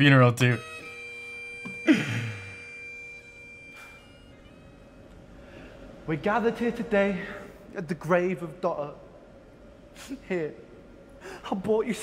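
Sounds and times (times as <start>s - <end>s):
faint drone of held tones: 0.0s - 6.2s
man sighing: 1.8s - 2.6s.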